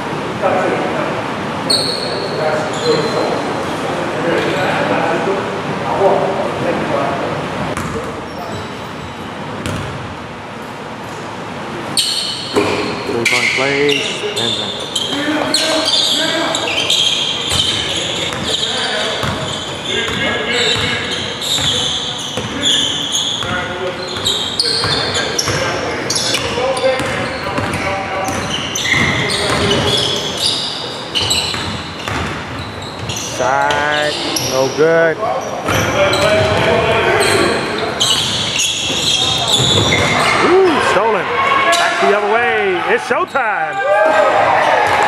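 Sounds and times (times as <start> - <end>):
people calling out and talking: 32.8 - 45.0.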